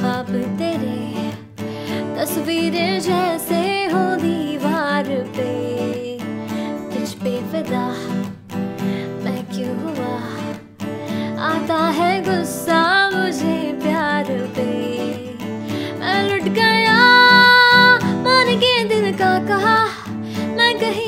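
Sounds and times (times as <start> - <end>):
acoustic guitar strumming: 0.0 - 21.0
woman singing: 0.0 - 21.0.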